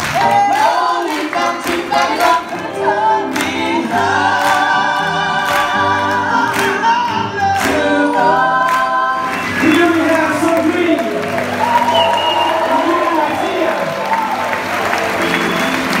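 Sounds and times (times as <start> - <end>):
vocal group singing in harmony: 0.0 - 13.0.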